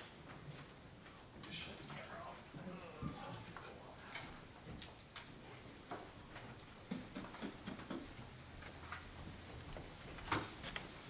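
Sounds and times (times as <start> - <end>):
footsteps: 1.9 - 11.0.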